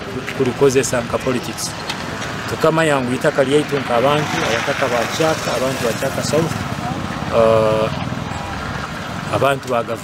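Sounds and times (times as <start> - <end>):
engine running: 0.0 - 9.8.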